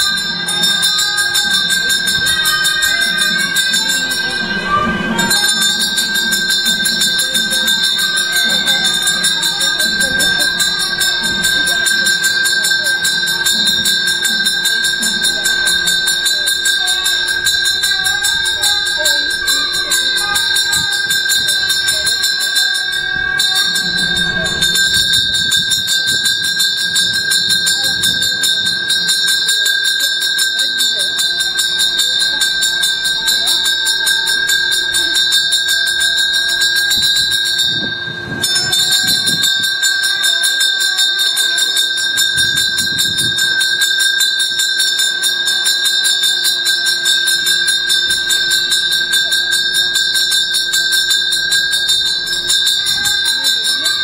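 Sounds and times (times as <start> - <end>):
bell ringing rapidly: 0.0 - 54.0.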